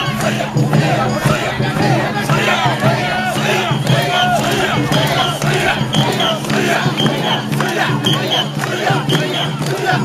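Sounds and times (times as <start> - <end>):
group chanting rhythmically: 0.0 - 10.0.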